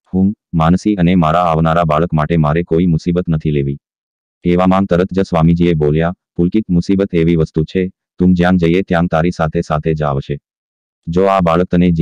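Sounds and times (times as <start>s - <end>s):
synthesised voice narrating: 4.4s - 10.4s, 11.1s - 12.0s.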